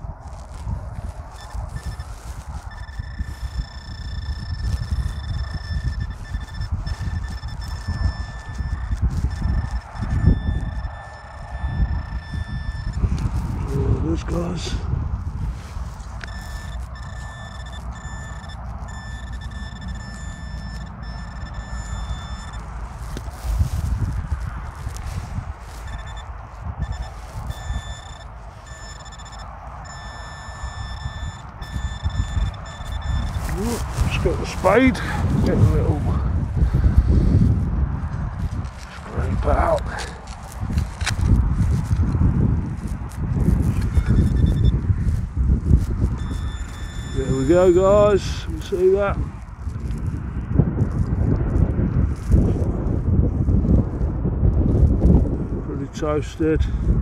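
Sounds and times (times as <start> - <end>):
probe scraping through soil: 0.0 - 50.2
high-pitched alert tone: 25.8 - 34.0.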